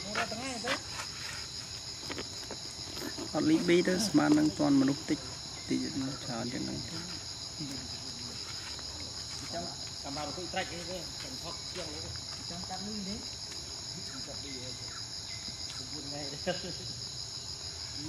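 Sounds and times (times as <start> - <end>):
shrill insect chorus: 0.0 - 18.0.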